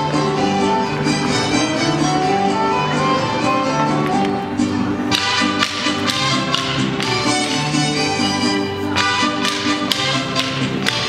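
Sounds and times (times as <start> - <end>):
folk music with violins: 0.0 - 11.0
machetes clacking: 5.2 - 7.6.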